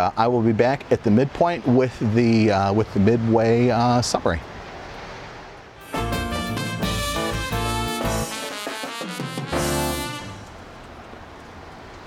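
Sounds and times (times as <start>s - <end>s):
outdoor background hiss: 0.0s - 12.0s
brass chord: 5.8s - 10.5s.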